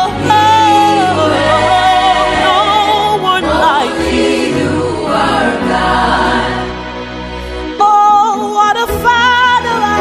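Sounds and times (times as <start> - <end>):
choir singing: 0.0 - 7.4.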